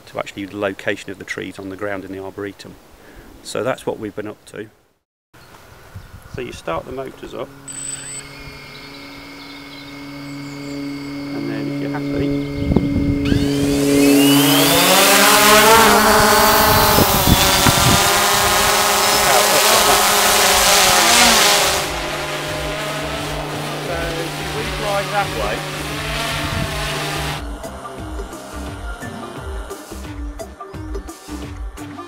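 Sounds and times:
drone propellers whining: 6.7 - 30.1.

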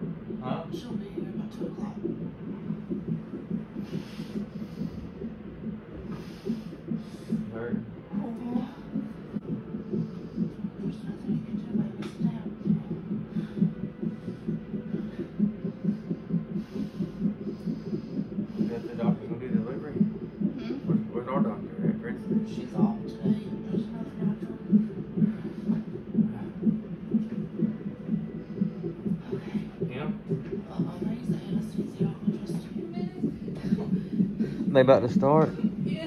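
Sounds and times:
fetal heartbeat on doppler: 0.0 - 36.0.

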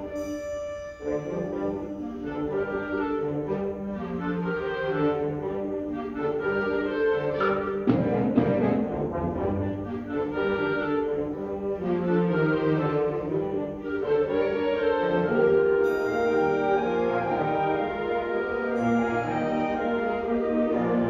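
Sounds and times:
sustained brass chords: 0.0 - 21.0.

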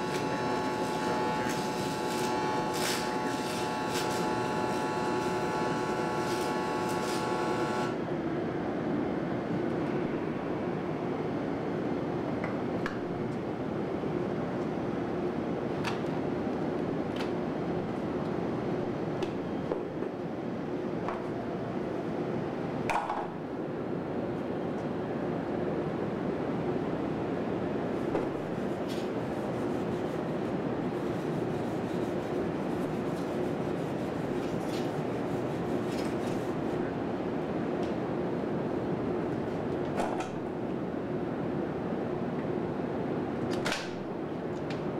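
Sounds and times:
welding arc buzzing: 0.0 - 8.0
steady background hum: 0.0 - 44.9.

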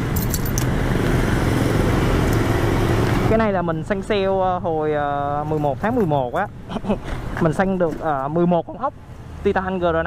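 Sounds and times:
keys jingling: 0.0 - 0.7.

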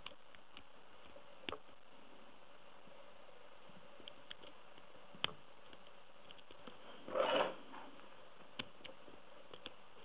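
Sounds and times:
metallic rasp: 7.0 - 7.6.

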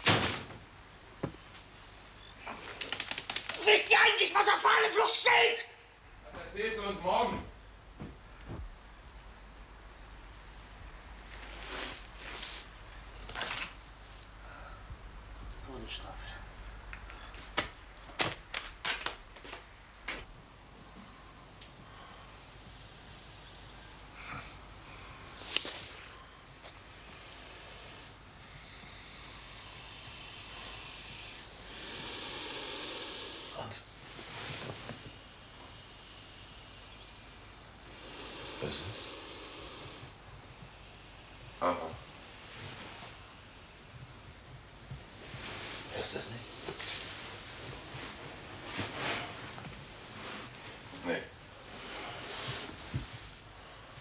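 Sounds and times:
cricket trilling: 0.0 - 52.2
soft hissing: 0.0 - 54.0.

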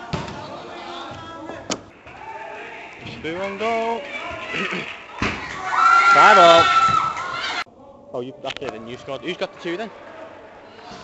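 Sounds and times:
football thuds: 0.0 - 1.9
echoing indoor hall noise: 0.0 - 11.0.

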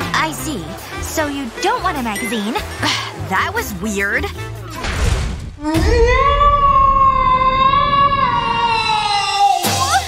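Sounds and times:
woman screaming: 5.7 - 10.0.

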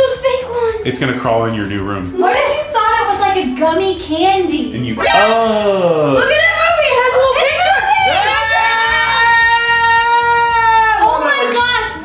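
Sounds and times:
person screaming high-pitched: 5.0 - 6.0.

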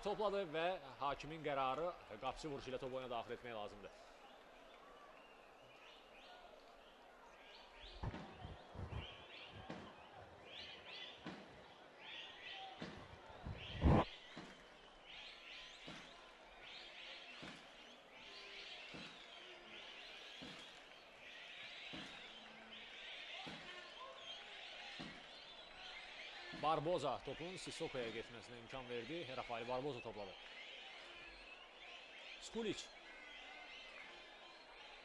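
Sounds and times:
stadium crowd murmur and shouts: 0.0 - 35.0.

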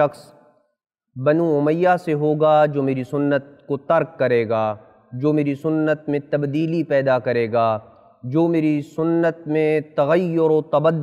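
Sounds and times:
man talking: 0.0 - 0.3, 1.2 - 11.0.

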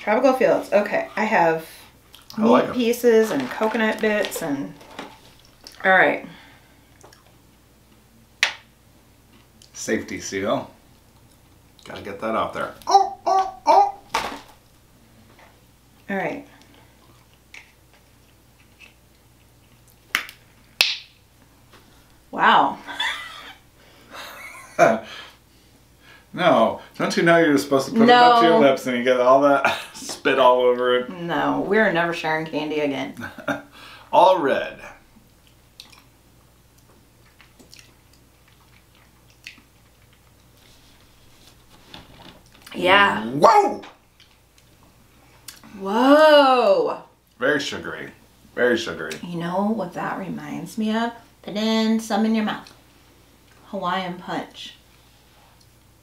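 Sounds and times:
plastic rustle: 3.3 - 5.4
person exclaiming loudly: 28.0 - 28.8
mouth smacking and clicking: 35.4 - 36.1.

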